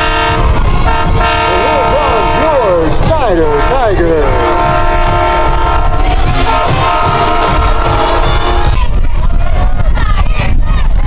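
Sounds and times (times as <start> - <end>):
loud horn chord: 0.0 - 8.8
low rumble: 0.0 - 11.0.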